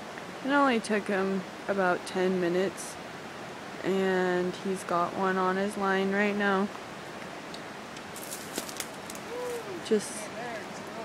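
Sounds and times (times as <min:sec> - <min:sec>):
river water rushing: 0:02.4 - 0:03.8, 0:06.8 - 0:11.0.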